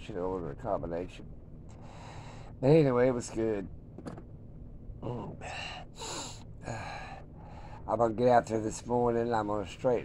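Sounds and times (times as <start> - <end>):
man breathing: 1.7 - 2.6, 5.4 - 7.9.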